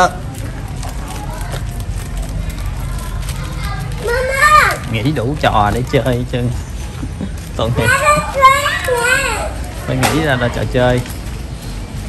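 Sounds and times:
toddler calling out sing-song: 0:07.8 - 0:09.6.

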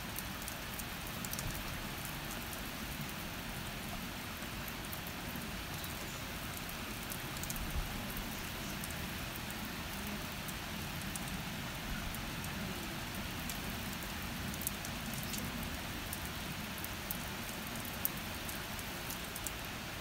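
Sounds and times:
raindrops ticking: 0:00.0 - 0:20.0
steady rain: 0:00.0 - 0:20.0.

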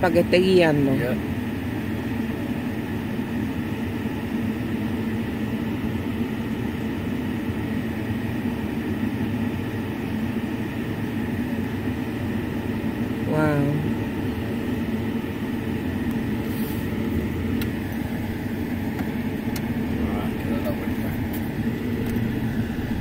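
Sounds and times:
vehicle engine idling: 0:00.0 - 0:23.0.

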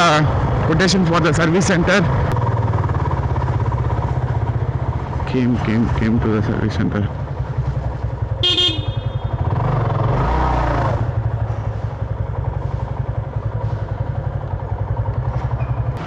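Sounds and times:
motorcycle engine running: 0:00.0 - 0:16.0
short horn toot: 0:08.4 - 0:09.4.

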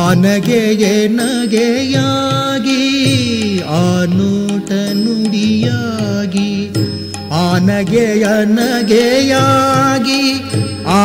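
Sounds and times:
sung melody with gliding ornaments: 0:00.0 - 0:11.0.

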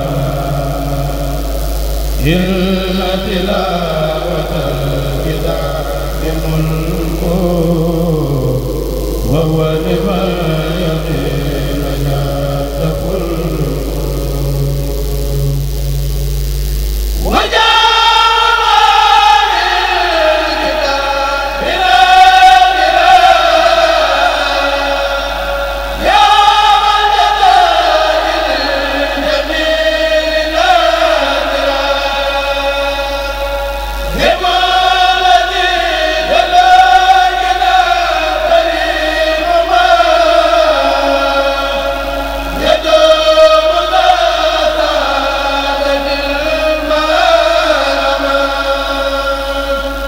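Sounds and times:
male voices chanting: 0:00.0 - 0:01.4, 0:02.2 - 0:15.6, 0:17.2 - 0:50.0
high-pitched voices chanting: 0:17.2 - 0:50.0.

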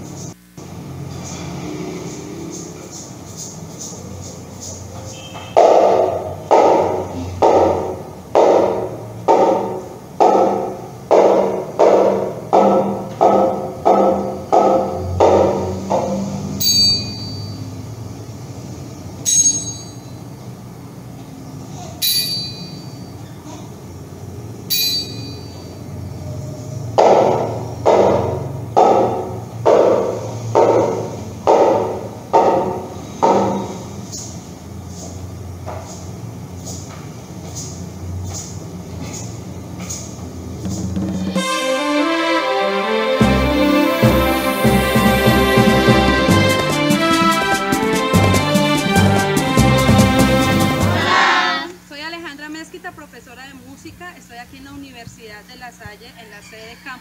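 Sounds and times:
percussion strokes: 0:01.2 - 0:17.8, 0:24.7 - 0:25.8, 0:40.6 - 0:51.6
high ringing metallic strikes: 0:09.3 - 0:18.0, 0:19.2 - 0:20.3, 0:22.0 - 0:23.3, 0:24.7 - 0:26.1.

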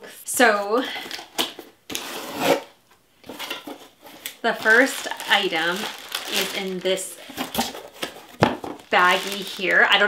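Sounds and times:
box handling noises: 0:03.2 - 0:09.8.

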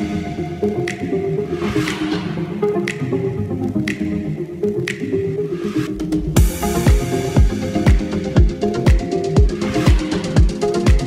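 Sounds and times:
runway music with bass: 0:00.0 - 0:11.0
sharp percussive hit: 0:06.4 - 0:09.0.

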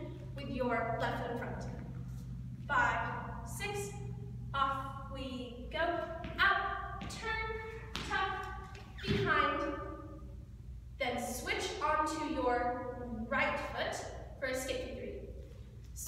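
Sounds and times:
woman speaking: 0:00.0 - 0:01.8, 0:02.7 - 0:10.0, 0:11.0 - 0:15.2
dance shoes tapping on floor: 0:06.2 - 0:09.3.

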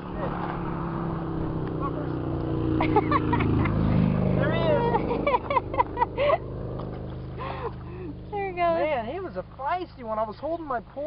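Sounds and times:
passing vehicle engine hum: 0:00.0 - 0:11.0.

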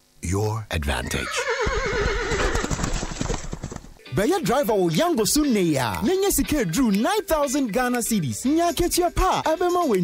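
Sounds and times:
horse whinnying: 0:01.0 - 0:04.0
hoofbeats: 0:01.4 - 0:04.0.

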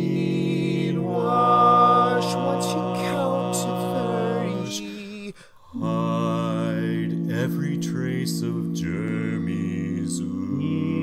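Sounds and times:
a cappella quartet singing: 0:00.0 - 0:11.0.

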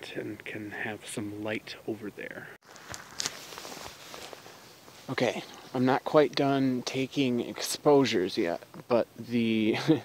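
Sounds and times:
faint footsteps: 0:02.6 - 0:06.4
phone handling rustle: 0:02.7 - 0:05.0.

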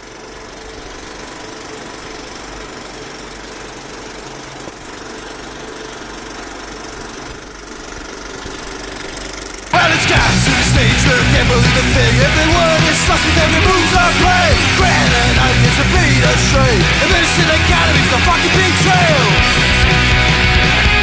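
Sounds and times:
mechanical running noise with hum: 0:00.0 - 0:21.0
loud punk rock music: 0:09.7 - 0:21.0.

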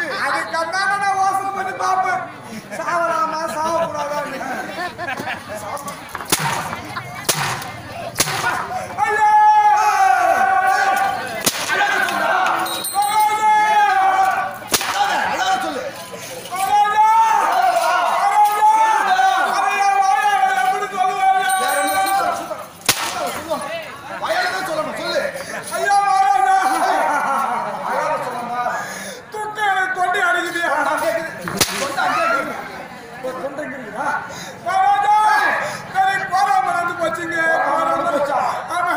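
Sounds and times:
man's voice: 0:00.0 - 0:05.8, 0:18.5 - 0:38.9
sharp hand slap: 0:06.3 - 0:08.6.

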